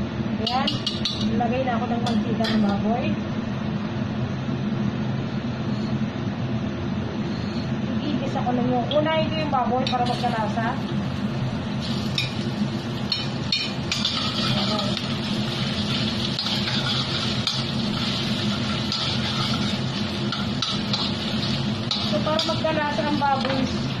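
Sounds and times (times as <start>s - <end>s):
meat sizzling in fat: 11.6s - 24.0s
spatula scraping a wok: 13.1s - 23.0s.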